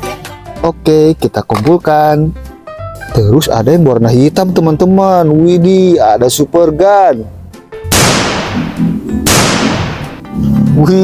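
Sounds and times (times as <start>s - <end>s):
background music: 0.0s - 11.0s
toy pistol electronic bang: 7.9s - 10.2s.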